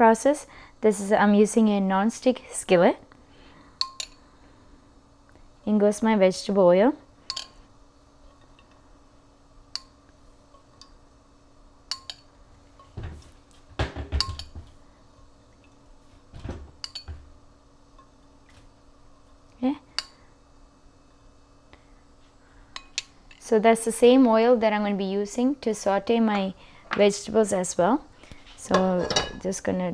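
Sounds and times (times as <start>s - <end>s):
metal spoon clinking on ceramic bowl: 3.8s - 4.2s, 7.3s - 7.6s, 11.9s - 12.3s, 14.2s - 14.6s, 16.8s - 17.1s.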